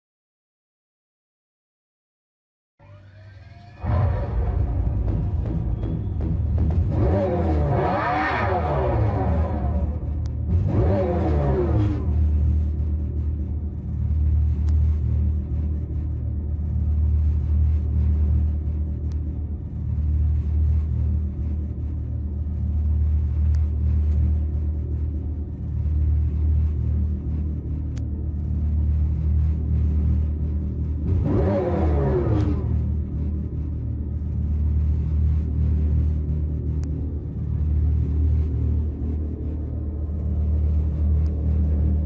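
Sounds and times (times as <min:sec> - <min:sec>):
synthesized car exhaust rumble: 0:02.8 - 0:42.0.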